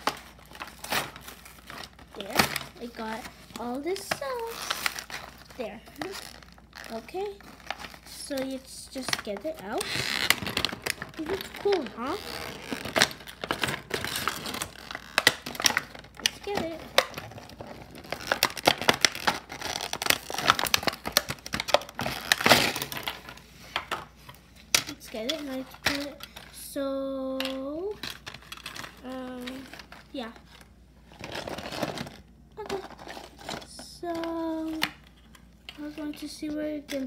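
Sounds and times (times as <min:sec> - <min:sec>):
cardboard and plastic rustling: 0:00.0 - 0:37.0.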